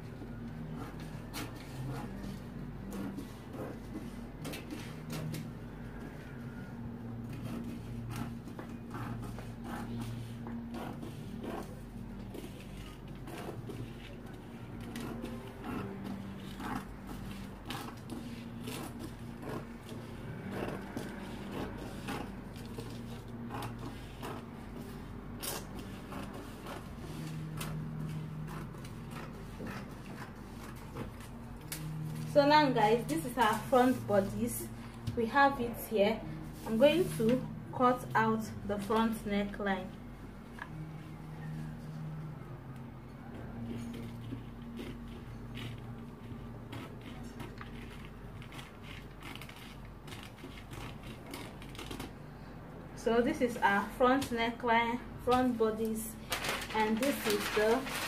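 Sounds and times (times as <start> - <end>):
low steady hum: 0.0 - 58.0
scissors cutting paper: 0.3 - 6.3, 7.1 - 32.3, 43.6 - 52.2, 55.3 - 58.0
scissors snipping paper: 43.8 - 52.1.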